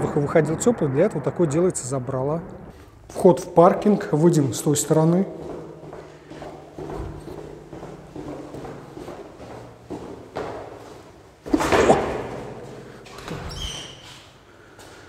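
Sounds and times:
footsteps on stairs: 3.8 - 14.2.

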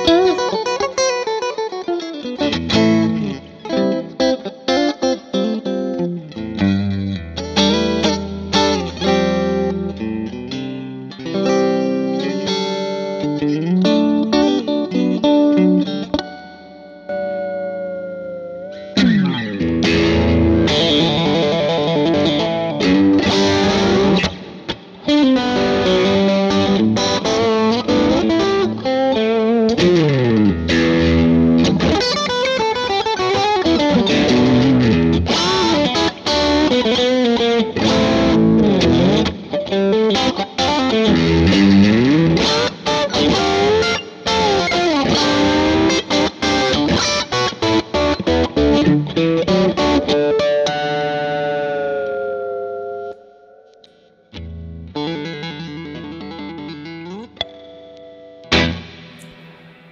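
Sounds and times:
electric guitar lead line: 0.0 - 59.9.

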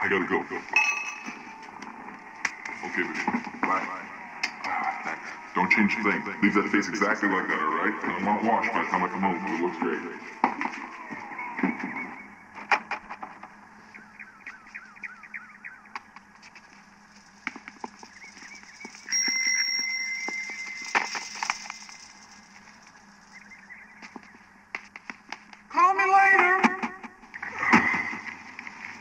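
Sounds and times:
birds chirping: 0.0 - 25.7
steady high tone: 0.6 - 1.8, 18.4 - 24.0.

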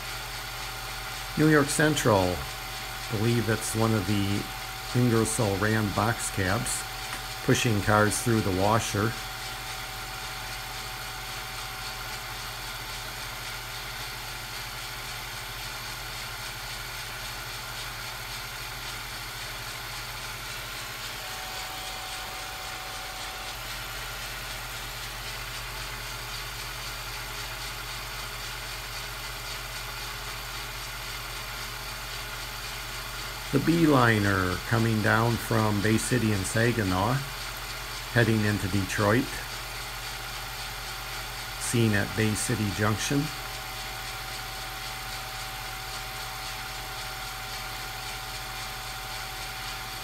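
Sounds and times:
low electrical hum: 0.0 - 50.0.

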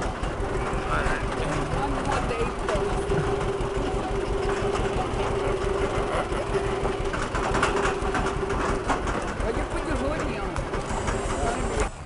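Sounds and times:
vehicle engine low rumble: 0.0 - 12.0.

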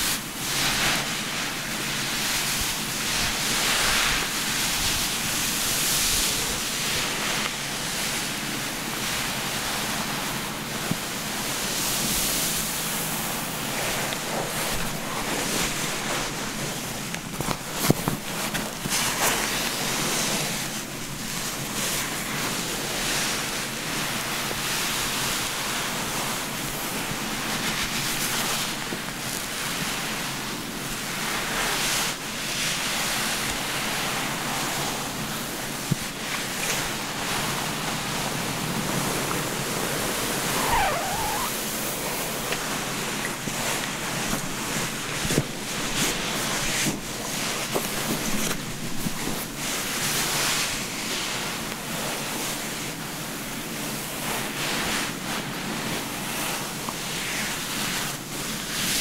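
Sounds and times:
towel rubbing wet hair: 9.0 - 52.4.

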